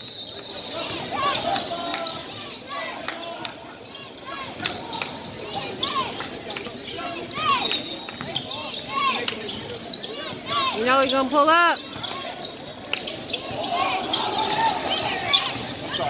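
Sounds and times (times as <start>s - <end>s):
sneakers squeaking: 0.0s - 3.0s, 3.6s - 16.0s.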